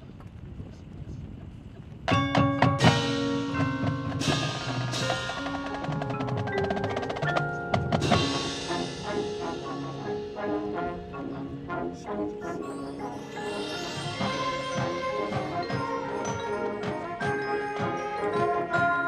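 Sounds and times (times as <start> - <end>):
drums: 2.0 - 12.0, 12.6 - 19.0
mallet keyboards: 2.1 - 19.0
marching band playing: 2.1 - 19.0.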